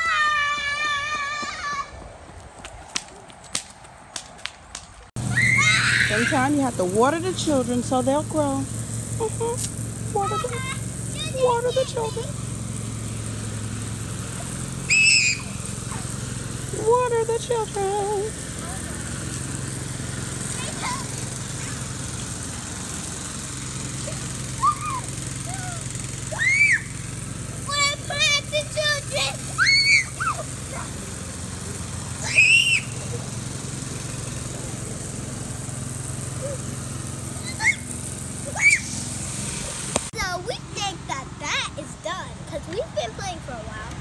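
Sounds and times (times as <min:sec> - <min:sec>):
children shrieking and calling out: 0:00.0 - 0:02.0, 0:05.2 - 0:06.6, 0:14.4 - 0:16.2, 0:24.5 - 0:27.0, 0:27.6 - 0:31.0, 0:32.2 - 0:33.1, 0:37.4 - 0:39.0
low outdoor hum: 0:00.0 - 0:44.0.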